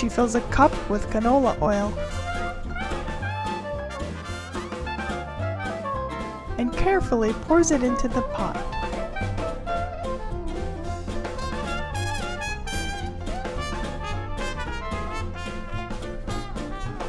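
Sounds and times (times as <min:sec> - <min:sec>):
jazz music with brass lead: 0:00.0 - 0:17.0.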